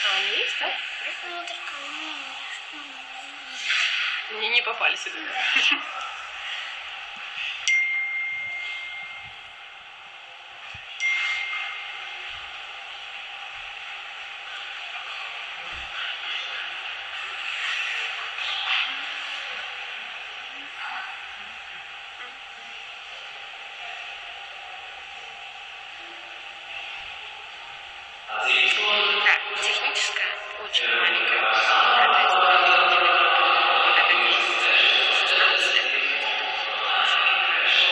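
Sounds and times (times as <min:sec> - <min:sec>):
large hall background noise: 0:00.0 - 0:37.9
high bell-like pings: 0:07.6 - 0:09.8, 0:11.0 - 0:12.8.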